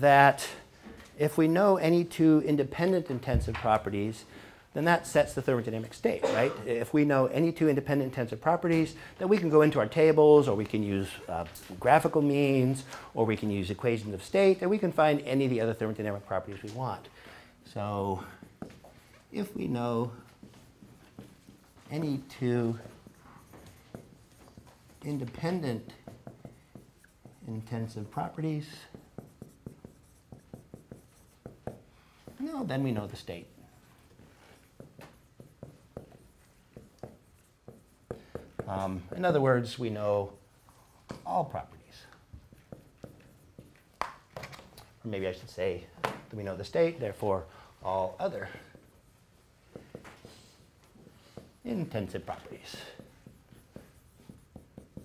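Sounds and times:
marker writing on whiteboard: 17.7s - 55.0s.

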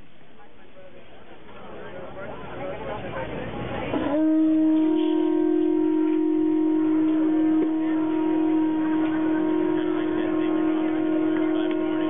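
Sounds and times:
conch shell trumpet note: 4.0s - 12.0s.

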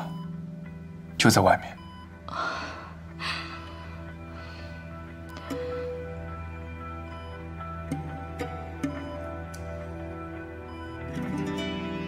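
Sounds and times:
soft background music: 0.0s - 12.0s
woman gasping: 2.3s - 5.0s.

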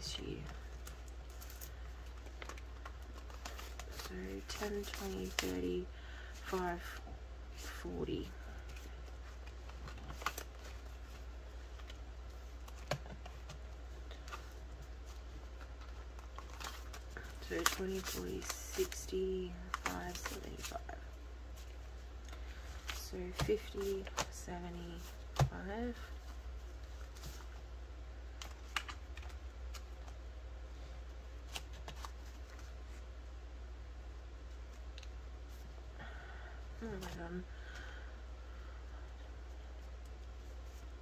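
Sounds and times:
steady low hum: 0.0s - 41.0s
banknotes crinkling: 0.4s - 7.0s, 7.6s - 27.6s.

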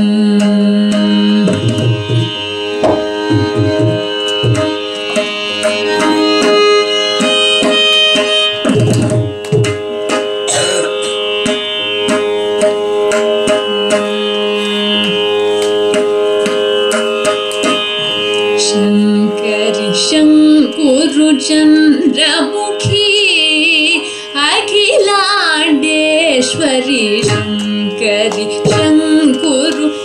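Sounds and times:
woman singing: 0.0s - 2.3s, 18.6s - 30.0s
mridangam strokes: 0.0s - 30.0s.

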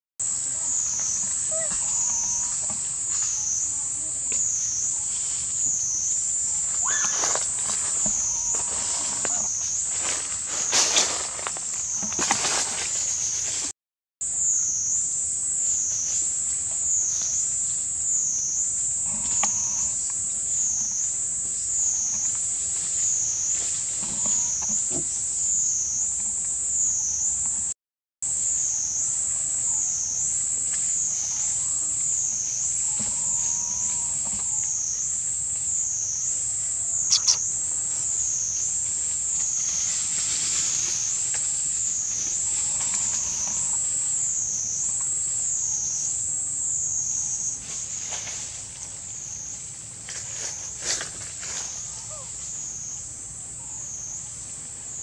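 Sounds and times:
insect chorus buzzing: 0.2s - 55.0s
sharp click: 37.1s - 37.5s.

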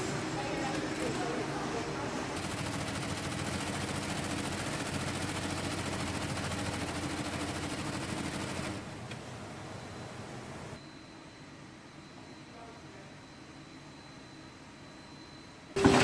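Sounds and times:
factory background: 0.0s - 16.0s.

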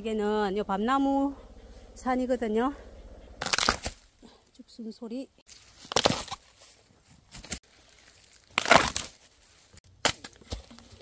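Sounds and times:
bamboo shoots snapping: 3.4s - 4.0s, 5.8s - 6.5s, 7.3s - 9.3s.

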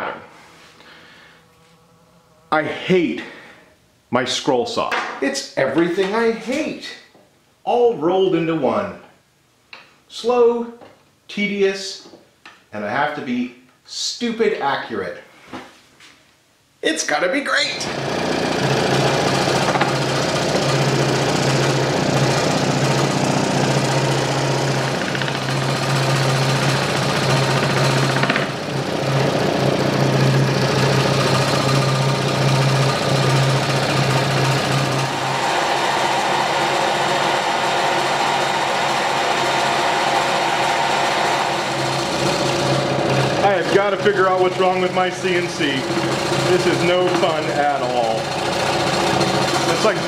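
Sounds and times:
scroll saw humming: 17.8s - 50.0s.

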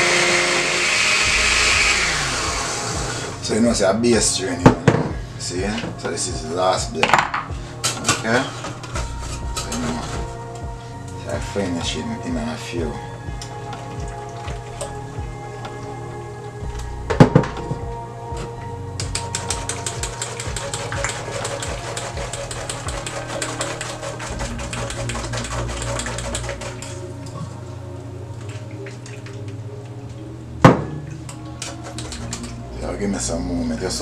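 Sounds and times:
background music: 0.0s - 34.0s.

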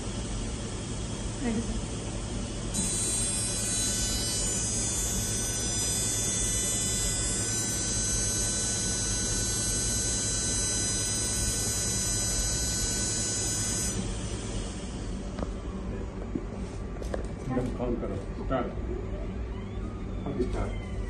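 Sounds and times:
electrical hum: 0.0s - 21.0s.

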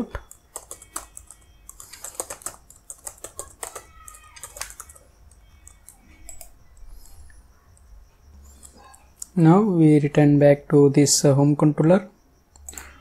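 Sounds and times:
computer keyboard typing: 0.0s - 9.4s, 12.5s - 13.0s.

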